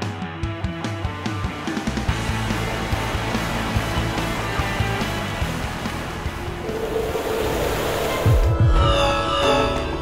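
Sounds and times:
noisy swell of music: 0:02.2 - 0:10.0.

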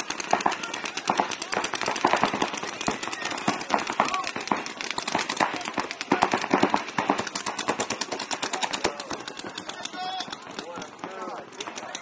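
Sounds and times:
paintball guns firing rapidly: 0:00.0 - 0:12.0
people shouting: 0:00.0 - 0:12.0.

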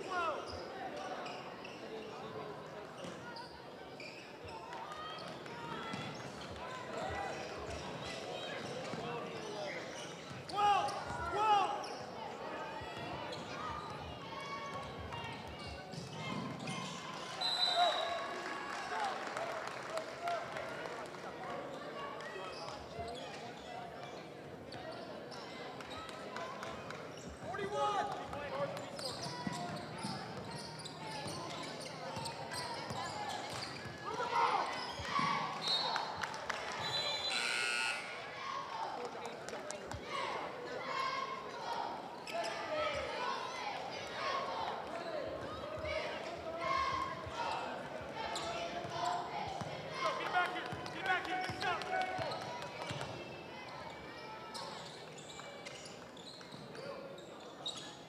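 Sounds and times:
sneaker squeaks and play noise: 0:00.4 - 0:02.2, 0:03.0 - 0:06.5, 0:07.7 - 0:11.2, 0:11.8 - 0:12.2, 0:12.8 - 0:18.0, 0:22.4 - 0:26.2, 0:28.5 - 0:34.1, 0:34.7 - 0:36.0, 0:42.1 - 0:43.0, 0:48.2 - 0:49.8, 0:51.5 - 0:58.0.

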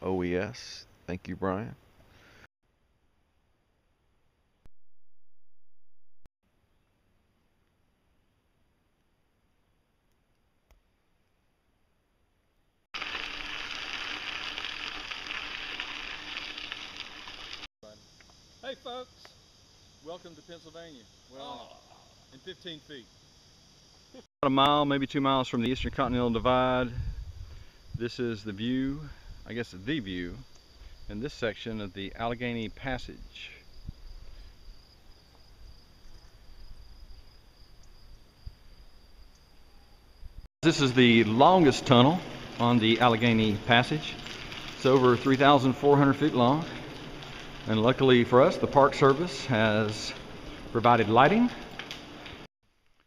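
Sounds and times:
rushing and crackling noise: 0:13.0 - 0:17.7, 0:40.6 - 0:53.0
high-pitched insect chorus: 0:13.0 - 0:51.8.

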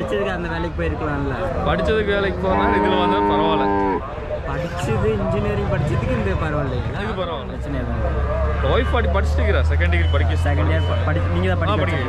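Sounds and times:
cow mooing: 0:02.4 - 0:04.0.

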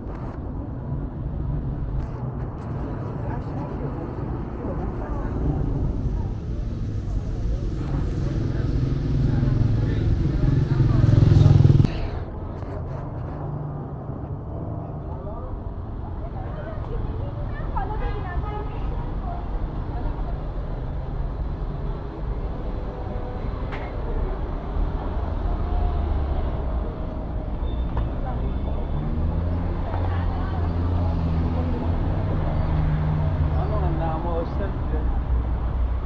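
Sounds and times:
road traffic: 0:00.0 - 0:36.0
passers-by talking: 0:02.1 - 0:36.0
vehicle passing: 0:07.7 - 0:12.3.

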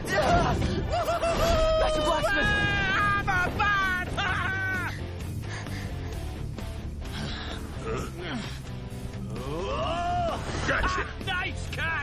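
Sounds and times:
dramatic film score music: 0:00.0 - 0:12.0.

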